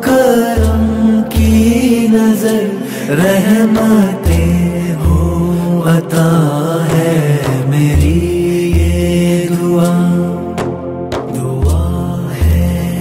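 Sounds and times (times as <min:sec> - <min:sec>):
chant-like singing: 0:00.0 - 0:13.0
deep bass: 0:00.6 - 0:02.2, 0:10.5 - 0:13.0.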